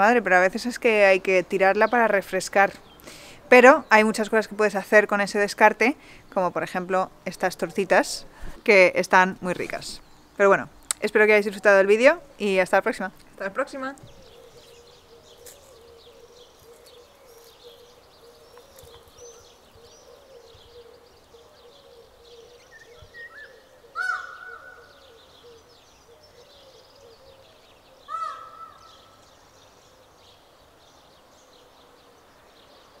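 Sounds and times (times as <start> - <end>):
harsh farm bird calls: 0.0 - 33.0
small birds chirping: 0.0 - 33.0.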